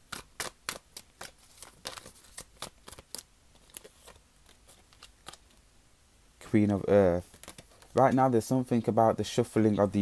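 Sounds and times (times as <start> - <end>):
cards shuffling: 0.0 - 5.6, 7.2 - 8.3.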